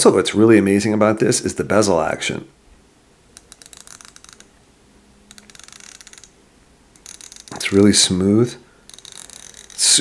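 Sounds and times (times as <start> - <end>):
watch bezel ratcheting clicks: 3.3 - 4.5, 5.3 - 8.1, 8.8 - 10.0.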